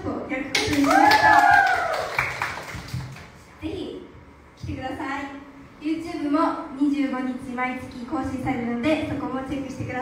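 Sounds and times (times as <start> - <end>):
small group clapping: 0.5 - 3.4.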